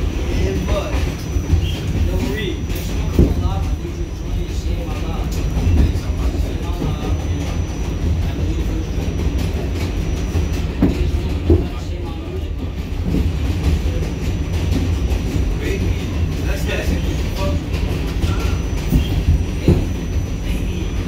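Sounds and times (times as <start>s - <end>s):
subway car rumbling: 0.0s - 21.0s
wheels knocking on rails: 0.0s - 21.0s.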